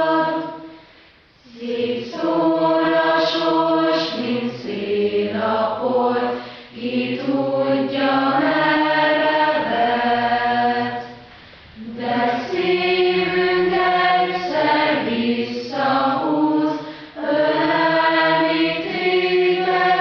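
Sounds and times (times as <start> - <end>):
choir singing slow song: 0.0 - 20.0.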